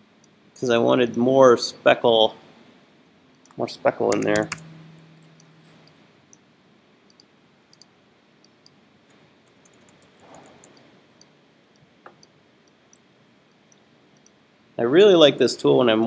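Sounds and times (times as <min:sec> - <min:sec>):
computer mouse clicks: 0:07.1 - 0:08.8, 0:09.4 - 0:14.4.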